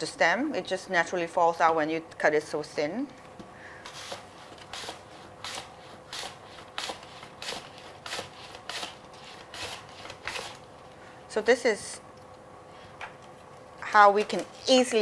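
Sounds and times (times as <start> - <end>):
mandoline slicer scraping strokes: 3.9 - 10.6.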